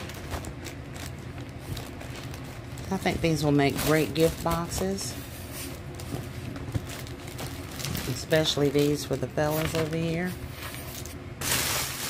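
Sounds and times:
low room hum: 0.0 - 12.0
paper bags rustling: 0.0 - 12.0.

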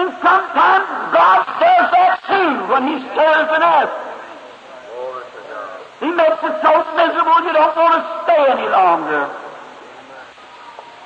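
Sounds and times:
man preaching: 0.0 - 4.1, 5.0 - 9.4.

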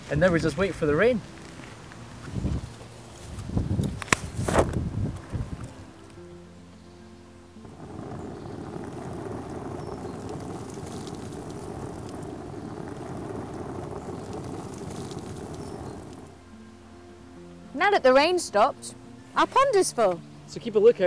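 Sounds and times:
soft background music: 0.0 - 21.0
water splashing on umbrella: 8.8 - 16.3.

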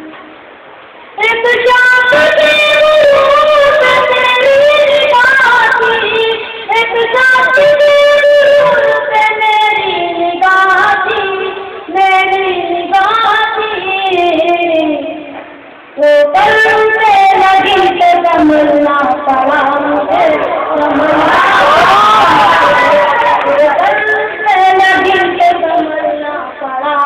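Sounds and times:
person singing melodic recitation: 1.2 - 15.4, 16.0 - 27.0
audience cheering and calling out: 19.8 - 24.4.

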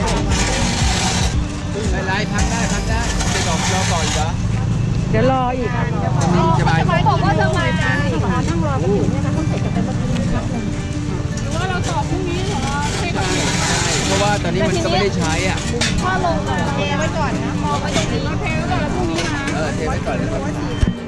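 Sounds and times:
people talking: 5.0 - 10.7, 11.5 - 21.0.

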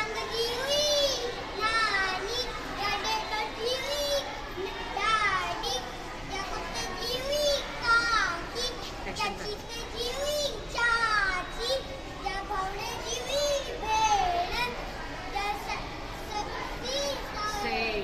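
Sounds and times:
boy reciting a rhyme: 0.0 - 18.0.

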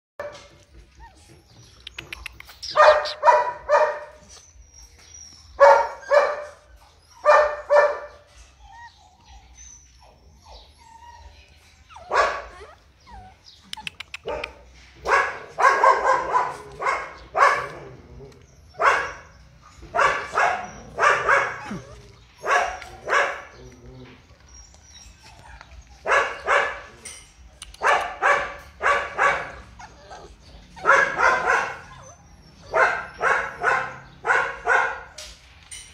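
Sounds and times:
puppies barking: 0.2 - 35.8
faint quick clicks: 1.8 - 3.2.

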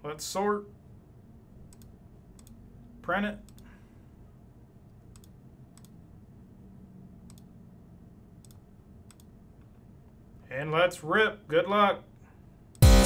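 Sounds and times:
faint low room hum: 0.0 - 12.8
computer mouse clicking: 1.7 - 2.6, 3.4 - 3.7, 5.1 - 6.0, 7.2 - 7.5, 8.4 - 9.7.

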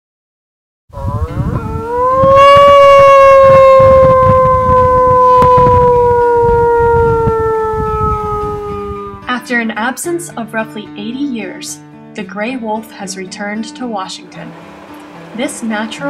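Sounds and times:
man imitating wolf howl: 1.0 - 9.3.

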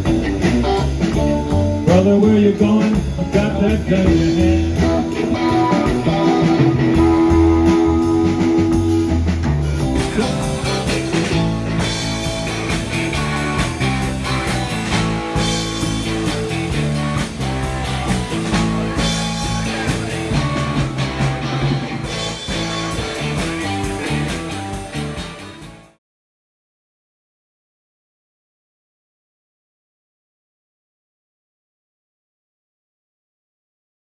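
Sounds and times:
blues-rock band playing: 0.0 - 26.0
drum kit beat: 0.0 - 26.0
electric guitar: 0.0 - 26.0.

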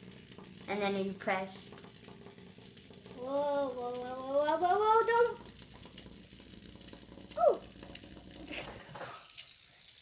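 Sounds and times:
small electric motor whirring: 0.0 - 10.0.

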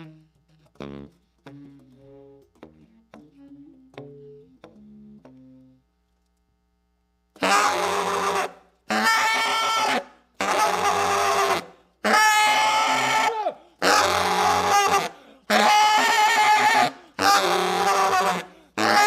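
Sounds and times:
baritone saxophone long notes: 0.0 - 2.4, 7.4 - 19.0.

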